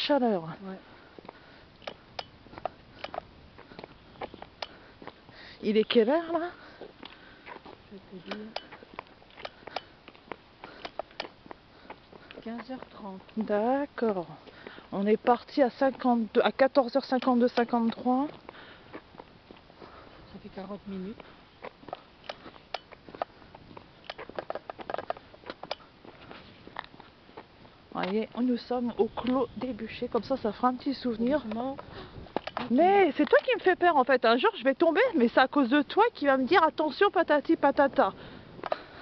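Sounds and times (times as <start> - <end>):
footsteps: 0.0 - 37.1
quiet street ambience: 0.0 - 39.0.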